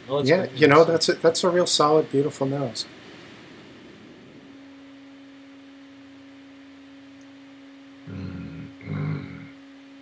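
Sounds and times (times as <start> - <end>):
faint steady hum: 0.0 - 10.0
low background hiss: 0.0 - 10.0.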